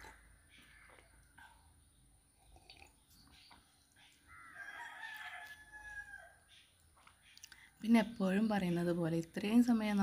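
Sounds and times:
rooster crowing: 0:04.3 - 0:06.4.

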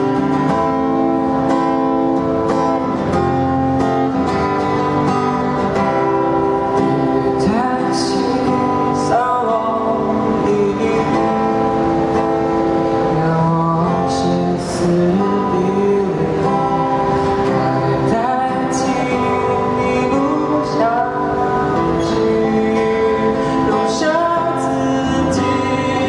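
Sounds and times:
acoustic guitar strumming: 0:00.0 - 0:26.0
man singing: 0:06.9 - 0:12.1, 0:13.0 - 0:26.0.

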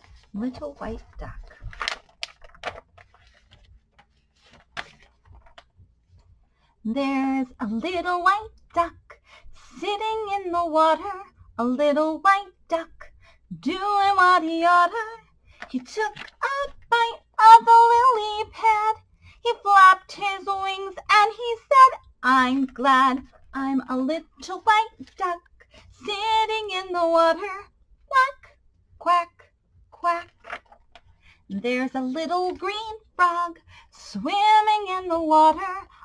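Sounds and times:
book page turning: 0:00.0 - 0:05.7, 0:30.2 - 0:31.0
paper rustling: 0:00.0 - 0:05.7, 0:30.1 - 0:31.0
faint room hum: 0:00.0 - 0:36.0
woman singing unaccompanied: 0:00.4 - 0:01.6, 0:06.8 - 0:29.4, 0:30.0 - 0:30.4, 0:31.5 - 0:36.0.

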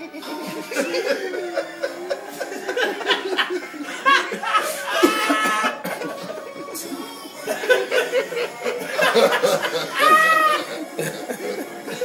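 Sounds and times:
person laughing: 0:00.0 - 0:12.0.

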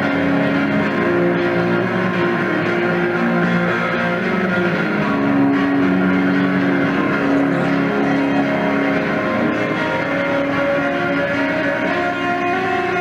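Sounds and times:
live rock band droning chords: 0:00.0 - 0:13.0.

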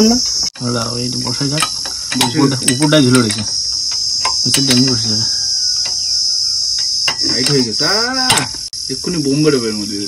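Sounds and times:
insects chirring: 0:00.0 - 0:10.0
men talking: 0:00.6 - 0:03.6, 0:04.4 - 0:05.5, 0:07.2 - 0:10.0.

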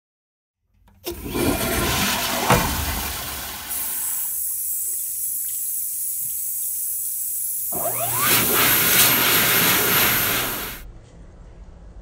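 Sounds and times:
tap running: 0:00.8 - 0:10.8
toilet flushing: 0:00.9 - 0:10.8.

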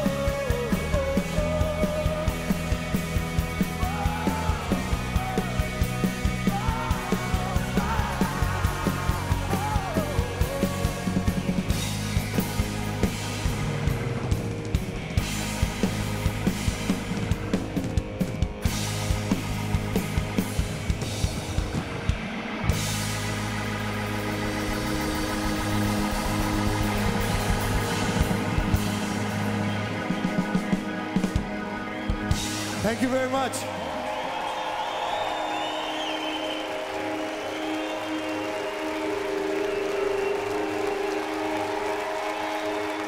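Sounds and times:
drum kit beating: 0:00.0 - 0:33.6
rock band playing: 0:00.0 - 0:43.0.

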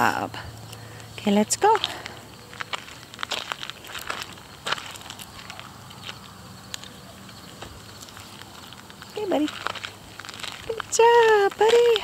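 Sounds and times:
footsteps crunching on gravel: 0:01.0 - 0:12.0.

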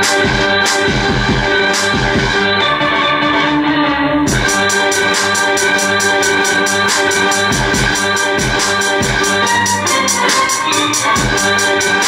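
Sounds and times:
keyboard chords sample: 0:00.0 - 0:12.0
kick drum: 0:00.2 - 0:02.4, 0:04.3 - 0:04.6, 0:07.5 - 0:09.3, 0:11.2 - 0:11.5
hi-hats: 0:04.3 - 0:12.0.

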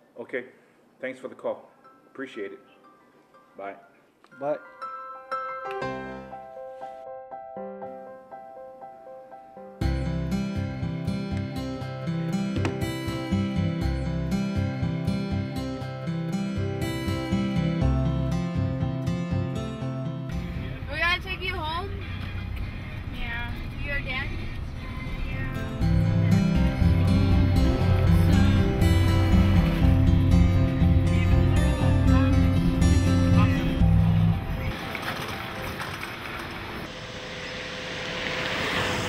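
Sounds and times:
car road and wind noise: 0:20.5 - 0:25.6.

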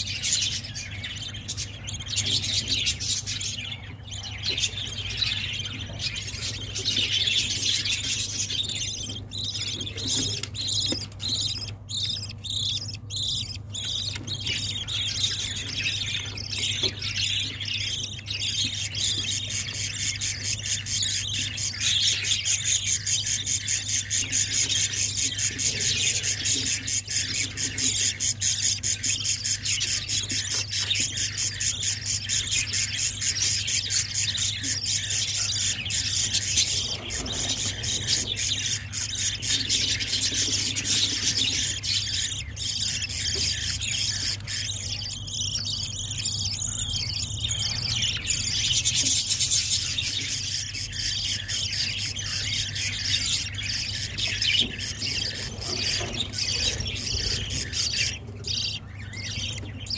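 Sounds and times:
budgerigar chicks begging calls: 0:00.0 - 0:59.9.

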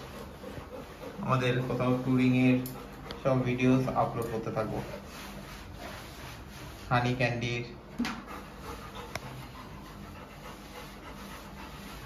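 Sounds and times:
dog panting: 0:00.0 - 0:06.5, 0:08.0 - 0:12.0.

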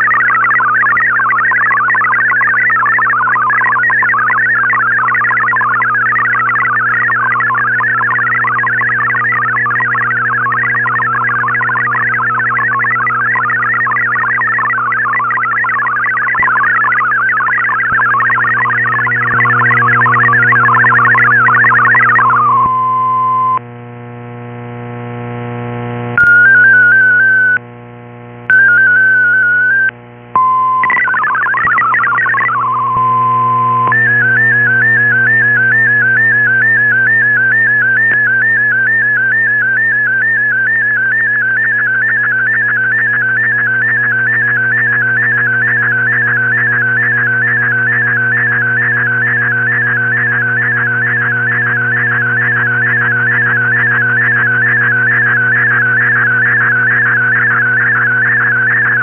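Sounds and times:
sweeping data burst: 0:00.0 - 0:22.7, 0:28.6 - 0:59.0
high tone wavering rapidly: 0:00.0 - 0:23.6, 0:28.5 - 0:59.0
warbling data tones: 0:00.0 - 0:23.6, 0:26.2 - 0:27.6, 0:28.5 - 0:59.0
steady low hum: 0:00.0 - 0:26.2, 0:29.9 - 0:59.0.

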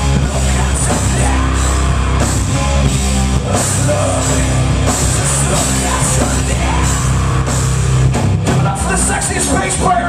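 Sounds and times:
drums: 0:00.0 - 0:10.0
electric guitars: 0:00.0 - 0:10.0.

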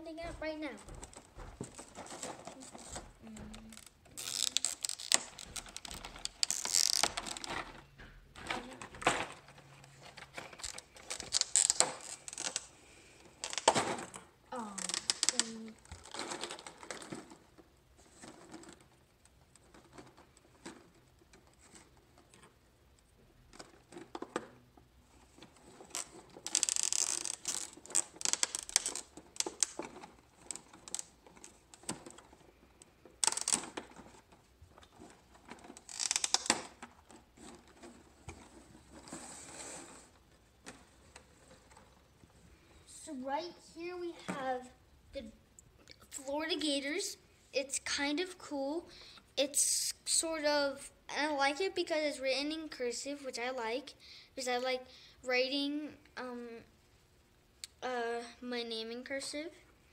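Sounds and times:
plastic helmets clacking: 0:00.8 - 0:42.7
plastic packaging crinkling: 0:00.9 - 0:07.8, 0:08.6 - 0:12.7, 0:25.4 - 0:42.1.

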